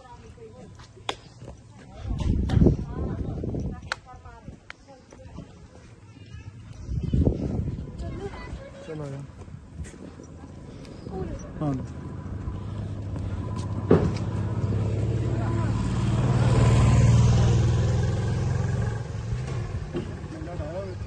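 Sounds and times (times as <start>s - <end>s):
vehicle driving past: 10.6s - 21.0s.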